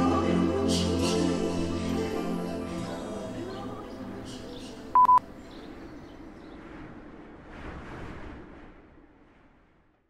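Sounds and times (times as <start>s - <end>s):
electronic beeps: 5.0s - 5.2s.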